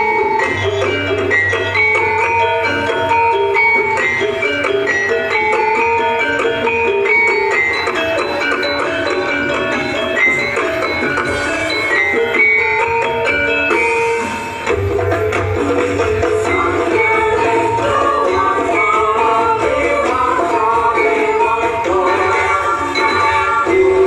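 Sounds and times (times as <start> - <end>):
pitched percussion melody: 0.0 - 24.0.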